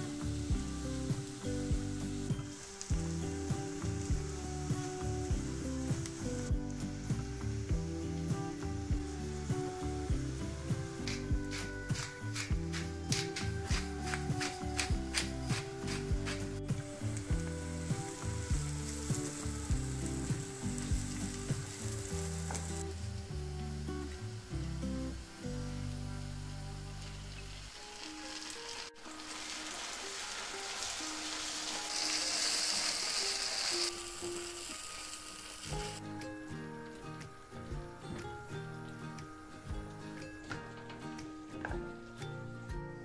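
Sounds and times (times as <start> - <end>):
background music: 0.0 - 43.0
mushrooms and onion sizzling: 0.0 - 43.0.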